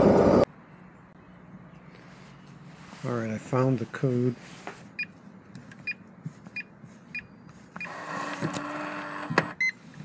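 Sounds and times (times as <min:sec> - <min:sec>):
lock motor running: 0:07.8 - 0:09.6.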